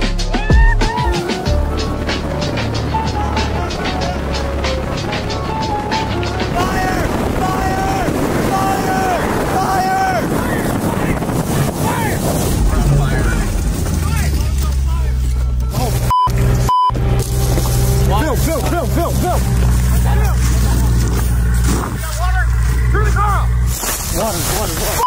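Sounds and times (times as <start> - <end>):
people shouting: 0.3 - 1.5, 6.5 - 12.2
car engine driving: 1.3 - 25.0
censor bleeps: 16.1 - 16.9.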